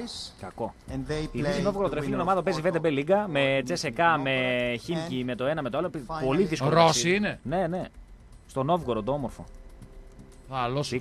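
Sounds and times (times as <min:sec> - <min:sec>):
person speaking: 0:00.0 - 0:07.5.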